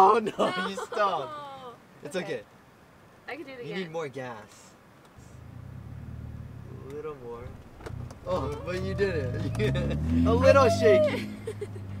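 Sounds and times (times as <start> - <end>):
car engine drone from inside cabin: 5.2 - 12.0.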